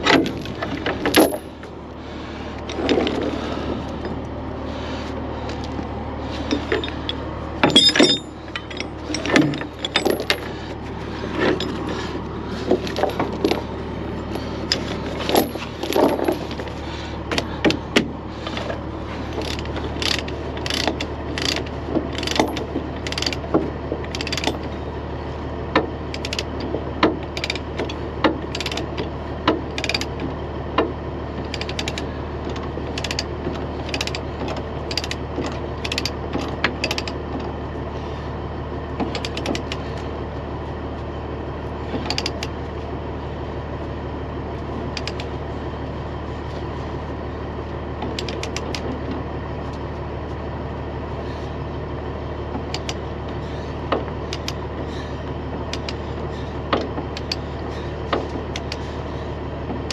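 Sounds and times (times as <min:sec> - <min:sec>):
low hum: 0:00.0 - 0:59.9
steel chain clinking: 0:01.0 - 0:01.6, 0:06.4 - 0:10.6, 0:12.8 - 0:16.8
ratchet clicks: 0:19.4 - 0:23.4, 0:24.1 - 0:24.7, 0:26.1 - 0:26.5, 0:27.4 - 0:29.0, 0:29.8 - 0:30.1, 0:31.5 - 0:32.0, 0:32.9 - 0:36.1, 0:36.8 - 0:37.2, 0:42.0 - 0:42.5, 0:45.0 - 0:45.3, 0:48.2 - 0:48.8, 0:52.7 - 0:53.0, 0:54.3 - 0:54.6.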